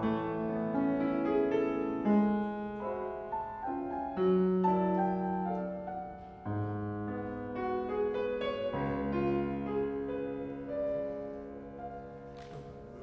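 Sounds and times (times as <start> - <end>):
piano chords: 0.0 - 13.0.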